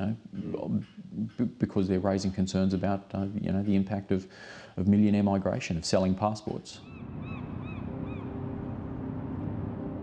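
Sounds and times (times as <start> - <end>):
gull crying: 6.8 - 8.6
low background rumble: 6.8 - 10.0.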